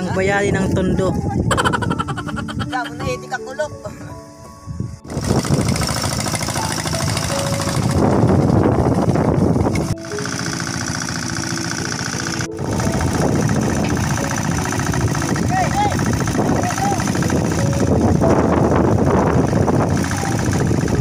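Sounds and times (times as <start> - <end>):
small engine knocking: 5.1 - 21.0.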